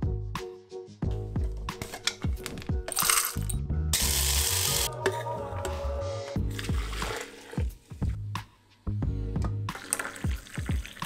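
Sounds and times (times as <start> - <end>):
background music with bass line: 0.0 - 11.0
coffee beans rattling in scoop: 2.9 - 4.9
coffee grinder grinding: 4.0 - 4.9.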